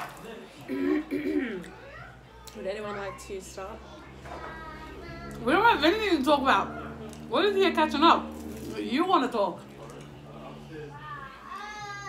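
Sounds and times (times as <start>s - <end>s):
steady low hum: 0.7s - 11.5s.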